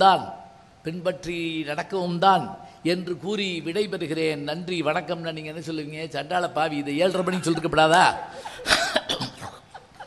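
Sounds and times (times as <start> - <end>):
person speaking: 0.0 - 10.0
person coughing: 8.4 - 9.9.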